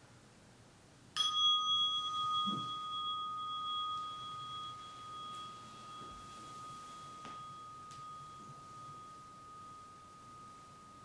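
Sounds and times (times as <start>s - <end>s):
meditation bell ringing: 1.2s - 11.0s.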